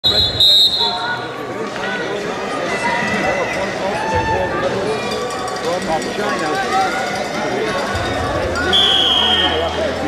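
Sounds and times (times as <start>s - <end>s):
referee's whistle: 0.0s - 1.0s, 8.7s - 9.8s
crowd voices calling out: 0.0s - 10.0s.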